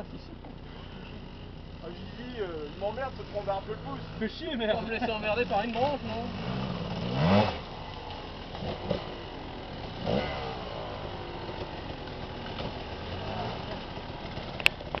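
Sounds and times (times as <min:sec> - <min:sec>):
dirt bike engines revving: 0:00.0 - 0:15.0.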